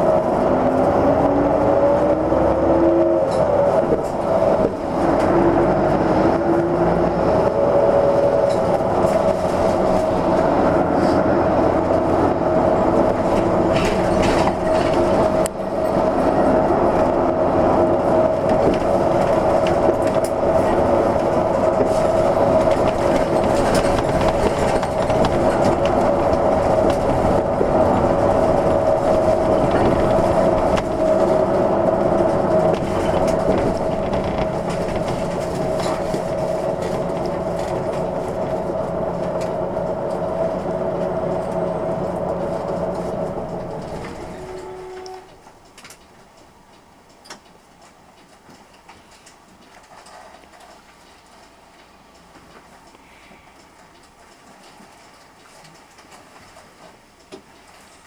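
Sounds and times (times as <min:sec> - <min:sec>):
bus engine whining: 0:00.0 - 0:48.4
road noise: 0:00.0 - 0:58.0.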